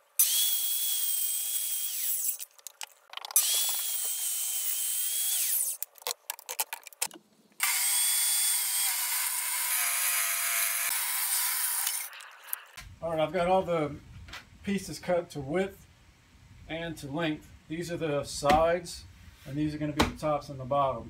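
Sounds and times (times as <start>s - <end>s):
circular saw cutting plywood: 0.2s - 2.4s, 3.4s - 5.8s, 7.6s - 12.1s.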